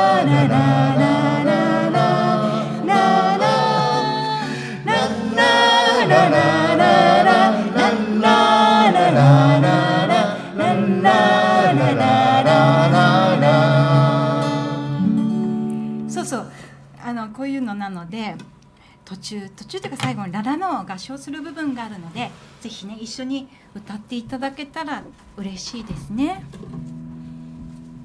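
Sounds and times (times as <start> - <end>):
voices singing la la la: 0.0 - 15.1
strummed acoustic guitar: 0.0 - 16.4, 26.4 - 28.0.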